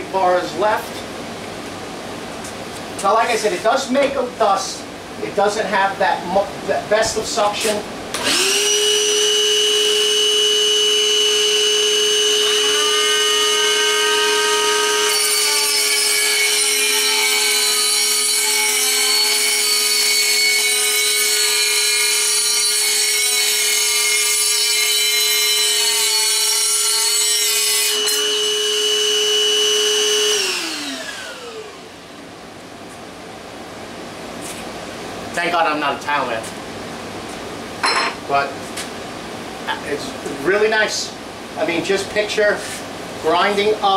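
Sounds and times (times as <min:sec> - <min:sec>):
cutoff saw whining: 0:08.2 - 0:32.0
saw grinding into tile: 0:12.3 - 0:28.5.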